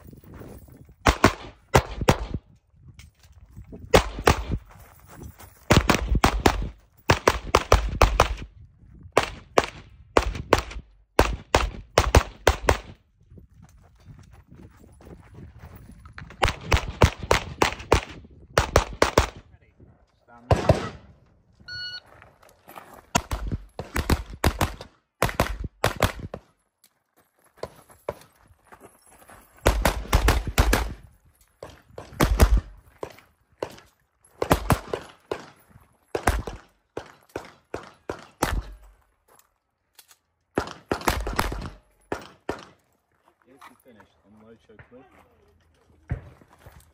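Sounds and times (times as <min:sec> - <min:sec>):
short electronic beep: 0:21.6 - 0:22.1.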